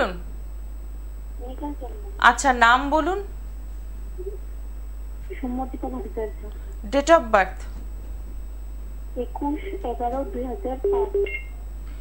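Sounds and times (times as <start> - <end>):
faint steady hum: 0.0 - 12.0
person speaking over telephone: 1.4 - 3.2, 5.2 - 7.8, 9.1 - 11.3.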